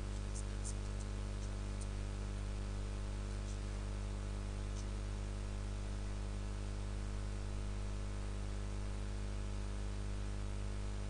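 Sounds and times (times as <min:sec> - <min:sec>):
electrical hum and buzz: 0:00.0 - 0:11.0
line noise hiss: 0:00.0 - 0:11.0.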